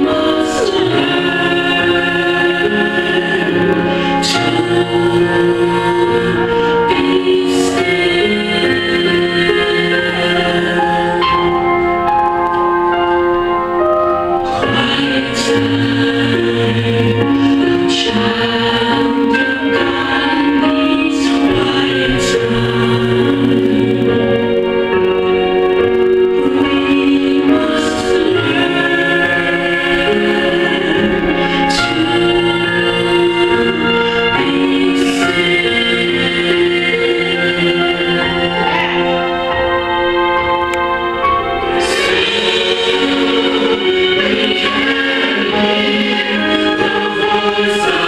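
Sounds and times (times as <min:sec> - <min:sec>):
gospel choir singing: 0:00.0 - 0:48.0
steady musical accompaniment: 0:00.0 - 0:48.0.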